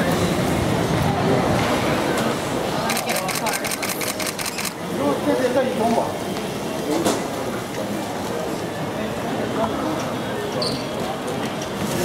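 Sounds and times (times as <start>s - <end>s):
camera shutter burst: 2.9s - 4.8s.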